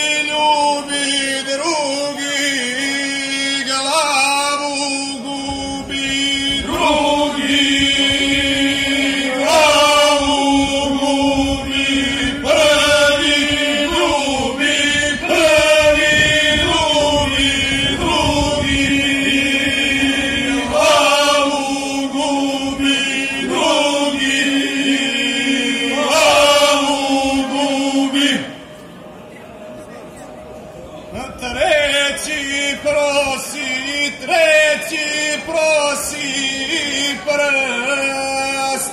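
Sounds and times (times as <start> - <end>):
male group singing a cappella: 0.0 - 28.6, 31.2 - 38.9.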